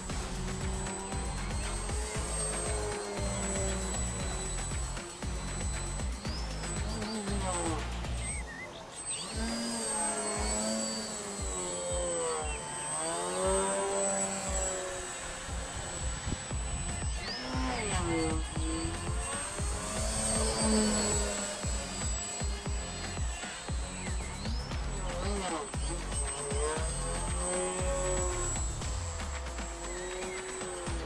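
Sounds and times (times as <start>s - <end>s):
model plane motor whining: 0.0s - 31.0s.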